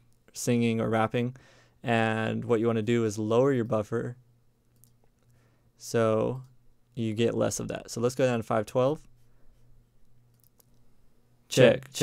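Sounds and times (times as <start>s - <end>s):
faint low hum: 0.0s - 12.0s
faint clicks: 4.6s - 5.4s, 10.0s - 10.9s.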